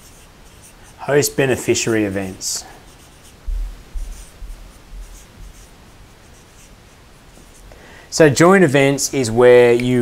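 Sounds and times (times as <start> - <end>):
marker rubbing and tapping on paper: 0.0 - 1.8, 2.9 - 7.7
low bumps: 3.4 - 5.2.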